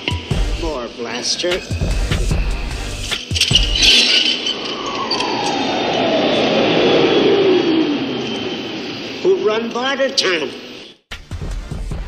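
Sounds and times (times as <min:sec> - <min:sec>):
noisy rush with sliding tone: 0:00.0 - 0:10.9.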